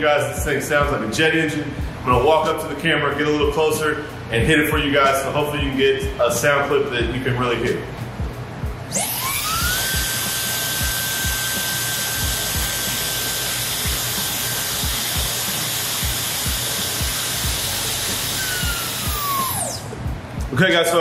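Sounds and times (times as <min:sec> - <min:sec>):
background music beat: 0:00.0 - 0:21.0
hair dryer whine: 0:08.8 - 0:20.0.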